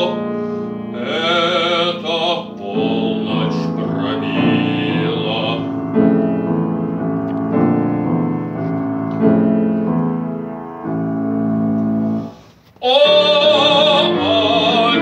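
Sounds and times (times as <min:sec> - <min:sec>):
man singing: 0:00.0 - 0:00.2, 0:00.9 - 0:05.8, 0:12.8 - 0:15.0
grand piano chords: 0:00.0 - 0:15.0.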